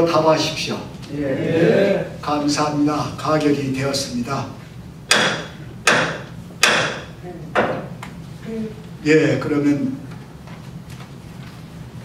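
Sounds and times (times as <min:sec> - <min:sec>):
wooden gavel knocks: 0:05.1 - 0:07.9.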